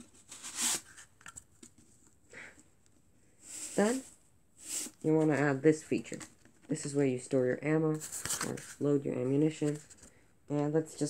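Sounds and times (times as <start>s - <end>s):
cardboard scraping swish: 0.2s - 1.0s.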